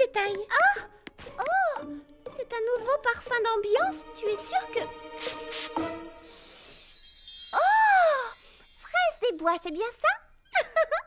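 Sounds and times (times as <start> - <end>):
faint sparkling chime shimmer: 5.1 - 10.7.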